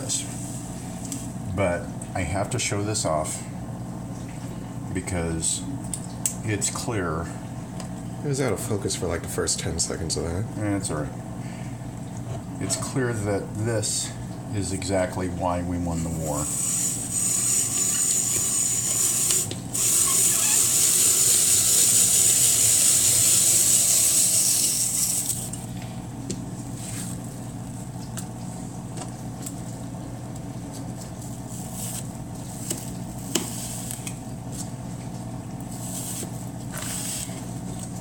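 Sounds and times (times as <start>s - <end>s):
apple peeler scraping hiss: 16.3s - 25.5s, 35.8s - 37.4s.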